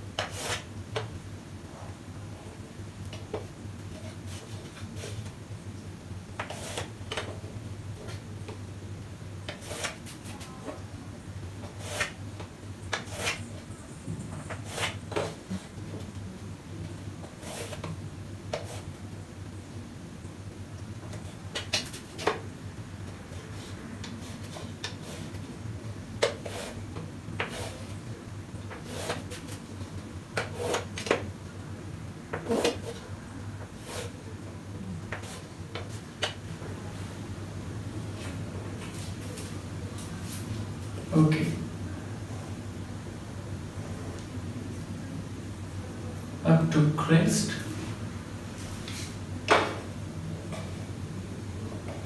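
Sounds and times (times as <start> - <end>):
low steady hum: 0.0 - 52.0
chalk scraping on chalkboard: 0.2 - 0.7, 6.4 - 6.9, 9.5 - 10.5, 11.6 - 12.2, 12.9 - 13.6, 14.4 - 15.4, 17.2 - 17.9, 18.5 - 18.9, 23.5 - 25.4, 26.3 - 26.8, 27.4 - 27.9, 28.7 - 29.6, 30.4 - 31.2, 32.4 - 33.0, 33.7 - 34.2.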